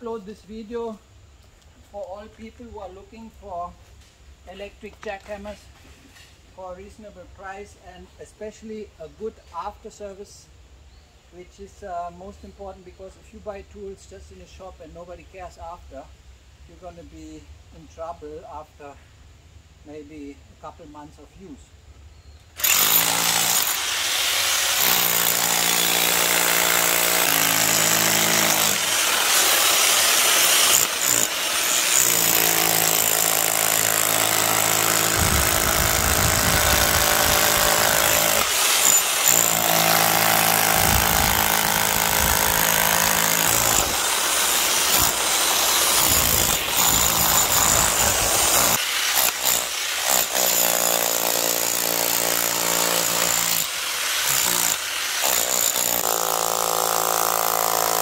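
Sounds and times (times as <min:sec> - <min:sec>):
rotary hammer chiselling stone: 0:22.6 - 0:58.0.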